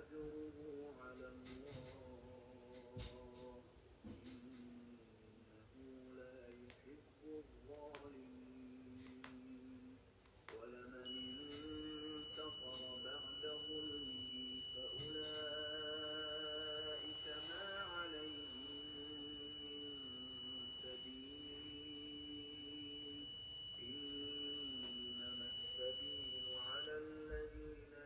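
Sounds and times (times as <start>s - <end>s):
high-pitched alarm buzzer tone: 11.1s - 26.9s.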